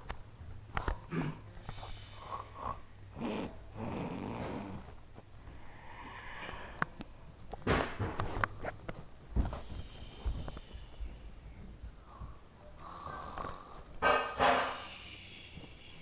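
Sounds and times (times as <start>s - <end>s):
person pretend snoring: 2.0s - 4.8s.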